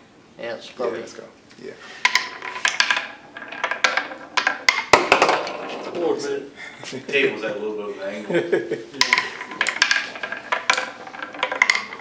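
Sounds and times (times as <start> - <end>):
marble clacking on wooden ramps: 1.9 - 6.2, 9.0 - 12.0.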